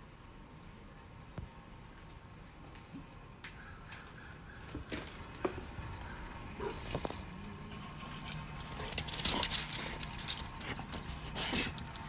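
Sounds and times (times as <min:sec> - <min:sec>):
dog collar tags jingling: 0:07.2 - 0:12.0.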